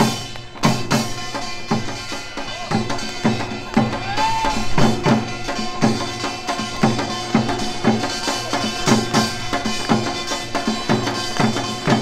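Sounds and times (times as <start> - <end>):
hourglass drum beating: 0.0 - 12.0.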